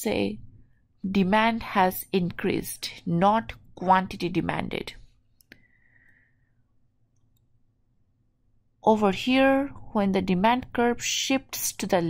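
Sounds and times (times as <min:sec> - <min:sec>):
woman speaking: 0:00.0 - 0:05.1, 0:08.8 - 0:12.0.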